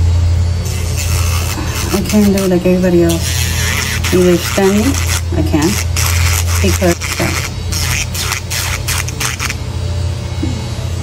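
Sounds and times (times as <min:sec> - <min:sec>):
steady low hum: 0:00.0 - 0:11.0
electric nail drill grinding: 0:00.6 - 0:09.7.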